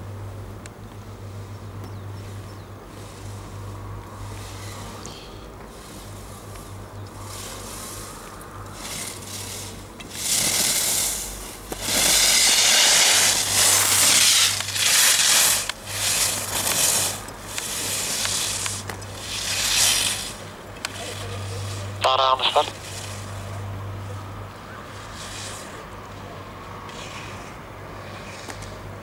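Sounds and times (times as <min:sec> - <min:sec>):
skis scraping on hard snow: 0:08.7 - 0:23.4, 0:24.9 - 0:26.2, 0:26.9 - 0:28.8.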